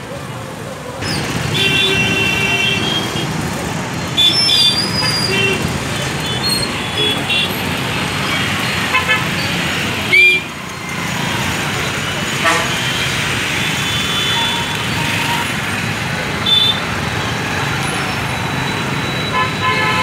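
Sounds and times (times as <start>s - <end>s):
motorbikes and bus running: 0.0s - 20.0s
vehicle horns tooting: 1.1s - 3.3s, 4.2s - 7.7s, 8.4s - 10.5s, 12.1s - 15.6s, 16.4s - 20.0s.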